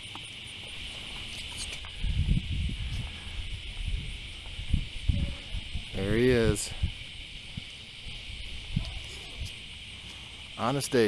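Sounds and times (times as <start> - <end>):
cicadas droning: 0.0 - 11.0.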